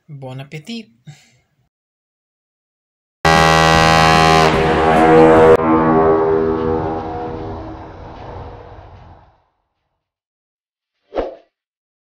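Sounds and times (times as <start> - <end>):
ship's horn blast: 3.3 - 9.2.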